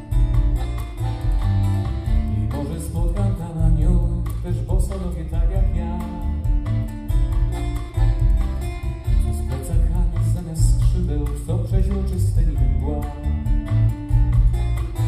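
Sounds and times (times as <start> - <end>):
drums: 0.0 - 15.0
electric bass guitar: 0.0 - 15.0
strummed acoustic guitars: 0.0 - 15.0
person singing: 2.1 - 6.6, 9.1 - 13.7.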